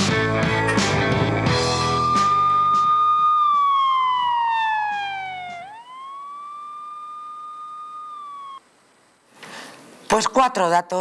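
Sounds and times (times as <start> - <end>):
siren-like gliding tone: 1.6 - 8.6.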